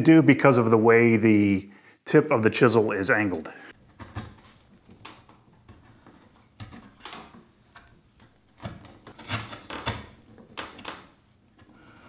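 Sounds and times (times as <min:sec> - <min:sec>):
chisel scraping wood: 0:03.8 - 0:07.0, 0:07.6 - 0:10.8.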